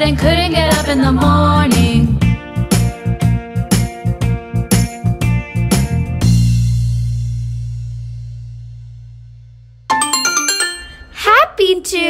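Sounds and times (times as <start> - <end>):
bright chiming jingle: 9.9 - 11.2.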